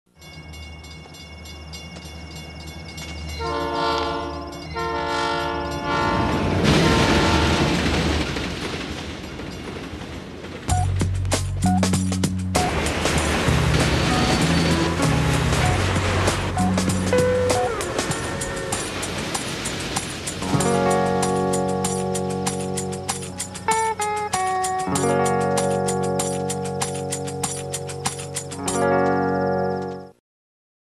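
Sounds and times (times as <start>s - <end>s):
train passing: 0.2s - 30.1s
train horn blasts: 3.4s - 7.8s
music with bass and beat: 10.7s - 18.5s, 20.4s - 29.2s.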